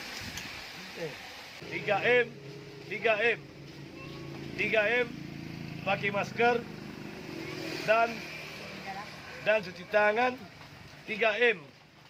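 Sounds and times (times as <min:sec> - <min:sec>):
motorcycle engine passing: 0:01.6 - 0:11.1.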